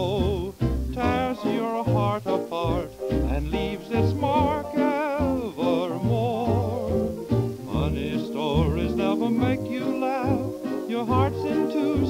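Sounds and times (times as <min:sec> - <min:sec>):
old dance orchestra record: 0:00.0 - 0:12.0.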